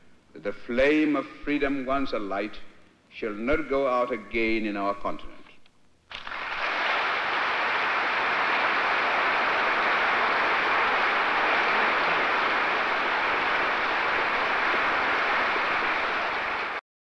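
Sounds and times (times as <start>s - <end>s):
large crowd applause: 6.1s - 16.8s.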